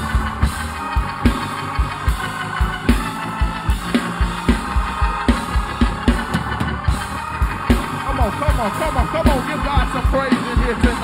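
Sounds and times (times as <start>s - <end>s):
fast kick drum beat: 0.0s - 11.0s
praise band music: 0.0s - 11.0s.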